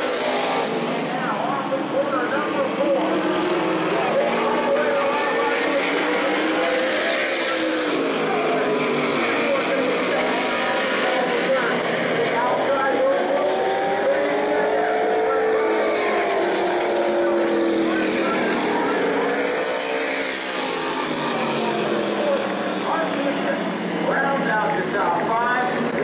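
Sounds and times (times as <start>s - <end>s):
race car engines passing: 0.0s - 26.0s.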